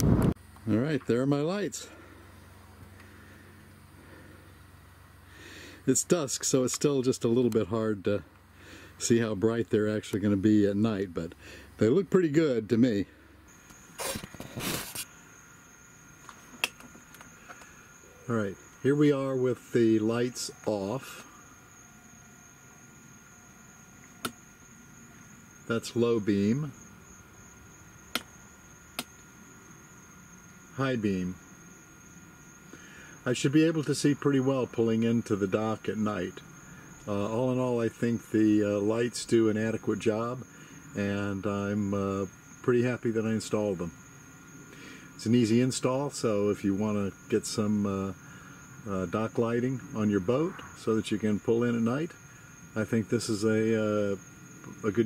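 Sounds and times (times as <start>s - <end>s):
crickets chirping: 0.0s - 55.0s
faint low hum: 0.0s - 55.0s
rustling noise: 13.6s - 15.1s
sharp click: 24.2s - 24.4s, 28.1s - 28.3s.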